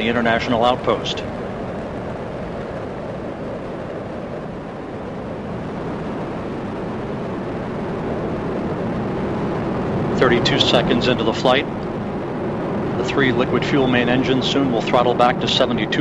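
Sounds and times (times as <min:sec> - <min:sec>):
rocket launch rumbling: 0:00.0 - 0:16.0.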